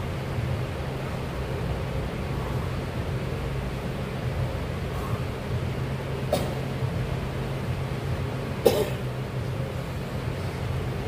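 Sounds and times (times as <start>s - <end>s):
steady low hum: 0.0s - 11.0s
man coughing: 6.3s - 6.6s, 8.6s - 9.0s.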